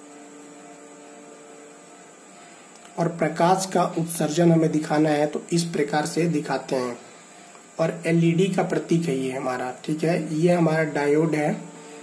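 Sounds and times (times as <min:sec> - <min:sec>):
electrical mains hum: 0:00.0 - 0:12.0
faint hiss: 0:00.0 - 0:12.0.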